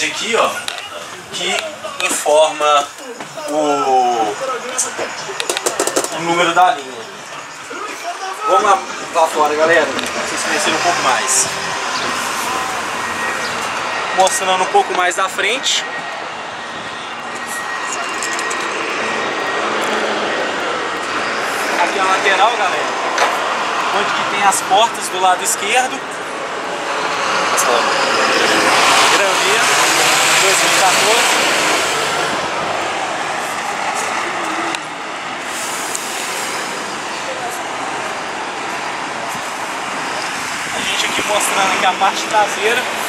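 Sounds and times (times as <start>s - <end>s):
diesel bus engine drone: 0.0s - 43.0s.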